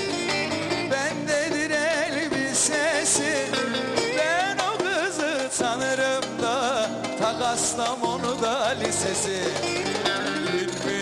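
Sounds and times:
plucked long-necked lute folk tune: 0:00.0 - 0:11.0.

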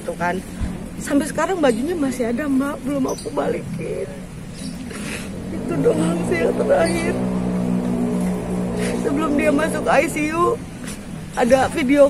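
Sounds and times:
car engine idling: 0:00.2 - 0:12.0.

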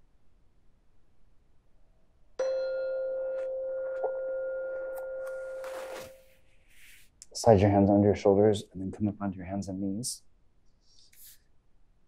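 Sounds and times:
singing bowl alarm chime: 0:02.4 - 0:06.4.

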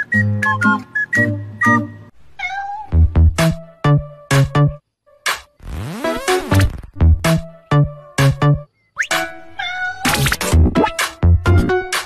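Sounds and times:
cat meow: 0:02.4 - 0:03.0, 0:09.6 - 0:10.2.

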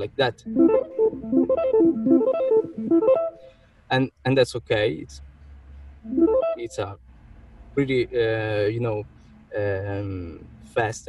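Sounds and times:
electric guitar fingerpicked arpeggio: 0:00.5 - 0:03.4, 0:06.1 - 0:06.6.

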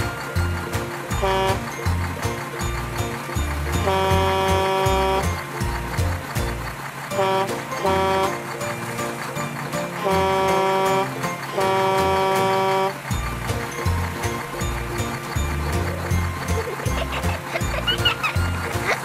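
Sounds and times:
background music with steady beat: 0:00.0 - 0:19.0
truck horn honking: 0:01.1 - 0:01.9, 0:03.7 - 0:05.5, 0:07.1 - 0:08.6, 0:10.0 - 0:13.2.

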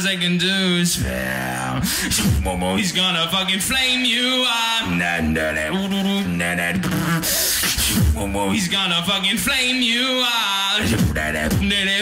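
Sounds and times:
person beatboxing: 0:00.9 - 0:04.1, 0:04.8 - 0:09.8, 0:10.7 - 0:12.0.

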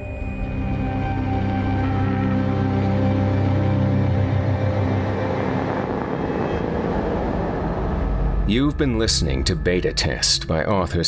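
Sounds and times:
low sustained drone tones: 0:00.0 - 0:10.8
low rumbling wash: 0:00.0 - 0:11.0.

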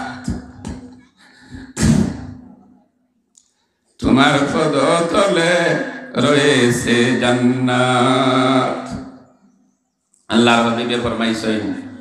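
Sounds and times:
man chanting through pa: 0:00.0 - 0:00.9, 0:04.0 - 0:09.1, 0:10.3 - 0:12.0.

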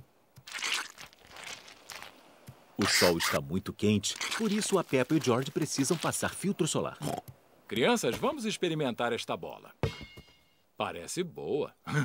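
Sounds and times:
soft squelching of cream: 0:00.4 - 0:03.4, 0:04.0 - 0:06.5
plastic bottle squirt: 0:00.5 - 0:02.1, 0:04.2 - 0:05.3.

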